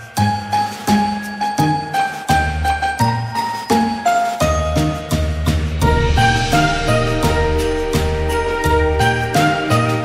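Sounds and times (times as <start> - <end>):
chiming bell-like melody: 1.1 - 10.0
sustained bass notes: 5.8 - 10.0.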